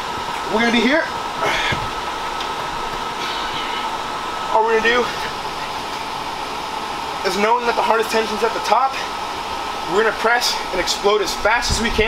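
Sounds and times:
whirring with high whine: 0.0 - 12.0.

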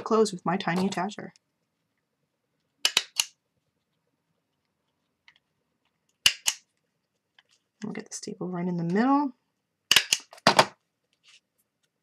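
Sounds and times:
mini stapler clicking: 2.8 - 3.3, 6.2 - 6.6, 9.9 - 10.3.

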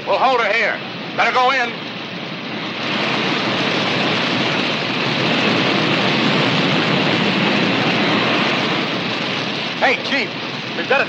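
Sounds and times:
forest fire rushing noise: 0.0 - 11.0.

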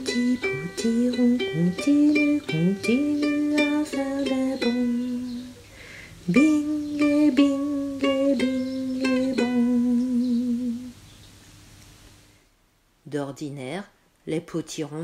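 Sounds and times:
plucked-string strumming: 0.0 - 5.6, 6.3 - 10.9
person singing children's song: 0.0 - 11.0.

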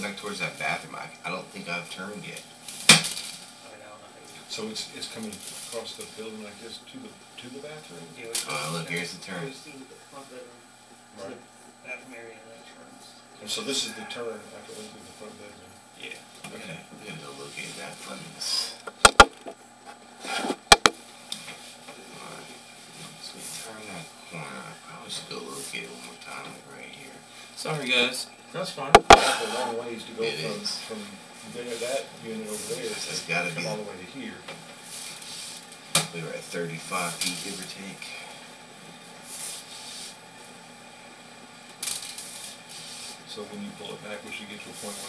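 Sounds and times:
steady hiss: 0.0 - 19.6, 20.2 - 40.7, 41.8 - 45.0
handling noise: 18.8 - 19.6, 20.5 - 21.0, 29.0 - 29.3.

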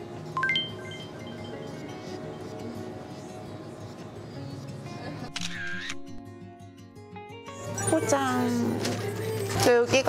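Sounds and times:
background music: 0.0 - 10.0
camera shutter sound effect: 5.3 - 6.2.

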